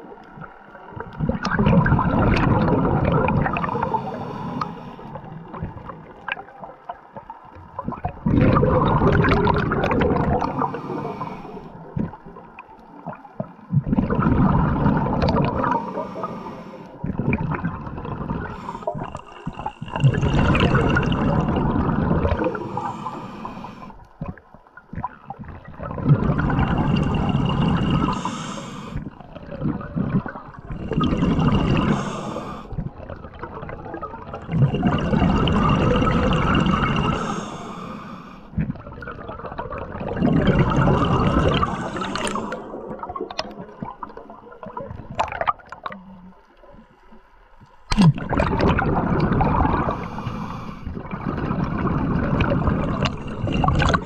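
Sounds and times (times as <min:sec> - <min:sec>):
diver breathing with bubbles: 0:00.0 - 0:54.0
underwater water noise: 0:00.0 - 0:54.0.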